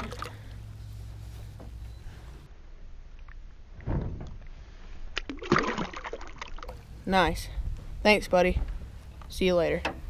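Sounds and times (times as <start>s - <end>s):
water splashing at boat side: 0.0s - 0.5s, 5.1s - 6.8s.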